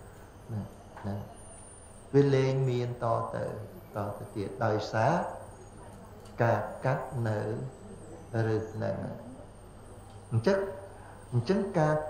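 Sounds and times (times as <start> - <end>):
man chanting speech: 0.5 - 1.4, 2.2 - 5.4, 6.4 - 9.4, 10.3 - 12.0.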